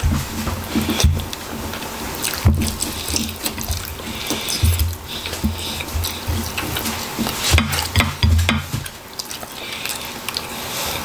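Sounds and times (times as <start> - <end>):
wet chewing and smacking: 0.6 - 11.0.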